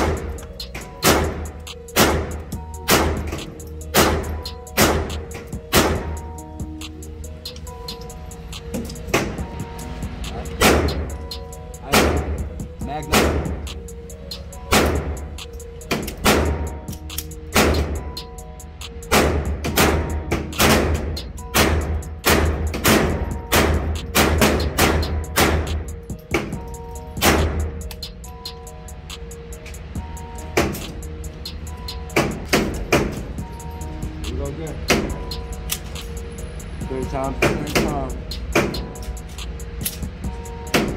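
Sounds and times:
music with heavy bass: 0:00.0 - 0:40.9
pistol shots echoing indoors: 0:01.0 - 0:05.1, 0:19.1 - 0:25.7.

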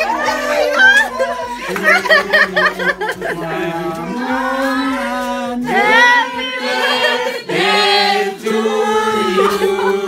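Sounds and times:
group singing unaccompanied: 0:00.0 - 0:10.0.

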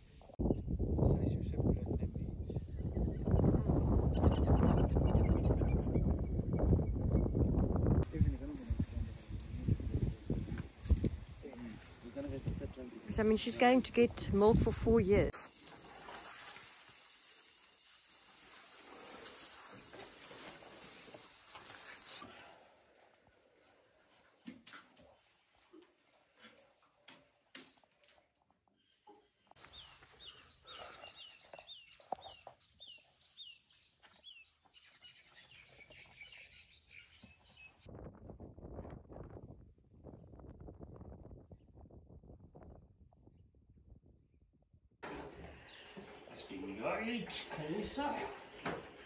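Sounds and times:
bird chirping: 0:28.7 - 0:37.9.

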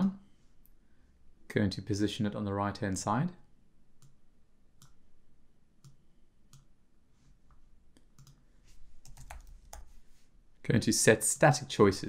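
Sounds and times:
computer mouse clicks: 0:04.8 - 0:05.0, 0:05.8 - 0:06.7, 0:08.0 - 0:08.4, 0:09.0 - 0:09.9
keyboard keystrokes: 0:09.0 - 0:09.9.

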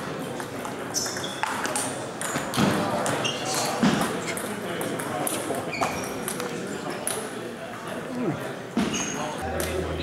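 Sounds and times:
voices in a hall: 0:00.0 - 0:10.0.

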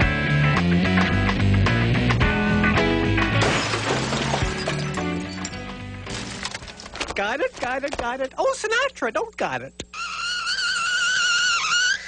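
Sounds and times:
guitar rock music: 0:00.0 - 0:03.4, 0:04.3 - 0:06.1.

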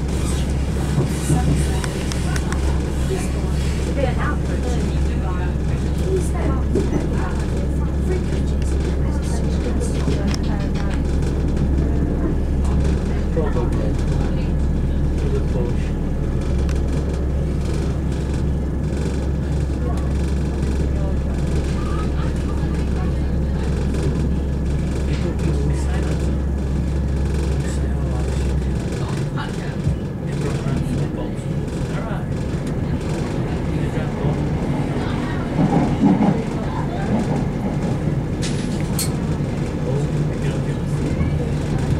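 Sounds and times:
diesel engine drone: 0:00.0 - 0:41.9
train wheels rumbling on track: 0:00.0 - 0:41.9.

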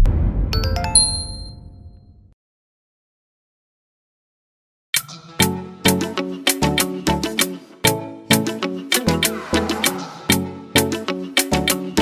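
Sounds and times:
low rumble: 0:00.0 - 0:00.6, 0:09.2 - 0:10.7
bright electronic ding: 0:00.5 - 0:02.2.

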